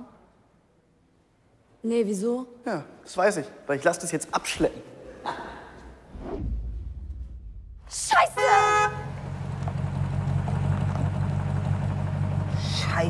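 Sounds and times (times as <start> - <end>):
vehicle engine idling: 7.9 - 13.0
car horn honk: 8.1 - 9.4.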